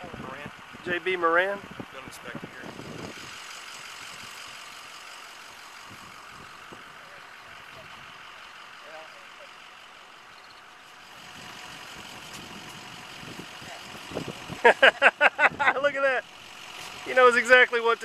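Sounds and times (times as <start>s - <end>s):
steady outdoor background hiss: 0.0s - 18.0s.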